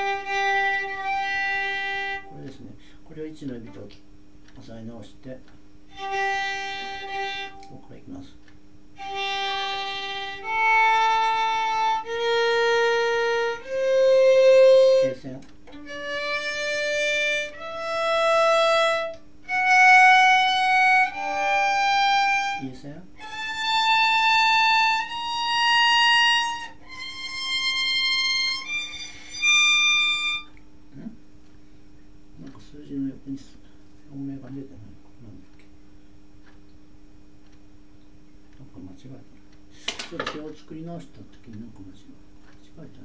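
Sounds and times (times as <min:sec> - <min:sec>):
violin playing a slow scale: 0:00.0 - 0:02.6, 0:05.9 - 0:08.1, 0:09.0 - 0:30.6.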